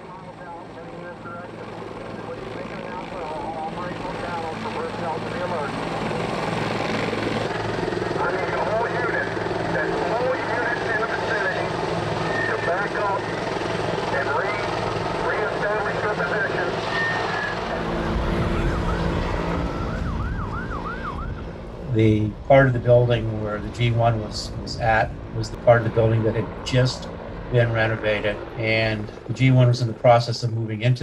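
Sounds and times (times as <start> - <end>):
sirens wailing and yelping: 0.0 - 28.4
low rumble: 17.7 - 29.3.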